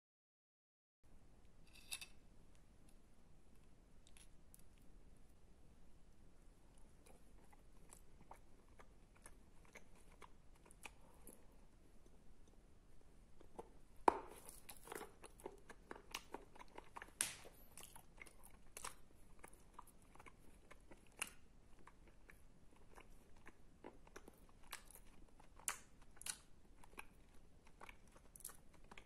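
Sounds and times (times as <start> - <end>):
biting and chewing clay: 6.8 - 12.2, 13.4 - 29.0.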